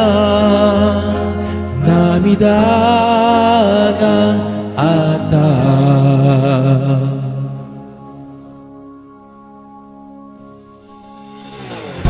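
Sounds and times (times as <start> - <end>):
pop ballad band: 0.0 - 8.1.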